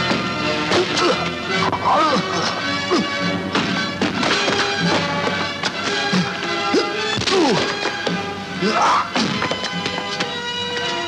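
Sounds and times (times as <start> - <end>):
dramatic film score music: 0.0 - 11.0.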